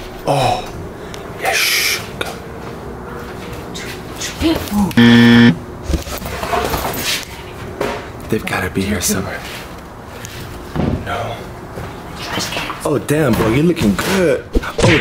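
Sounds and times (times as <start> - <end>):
loud flat buzz: 5.0 - 5.6.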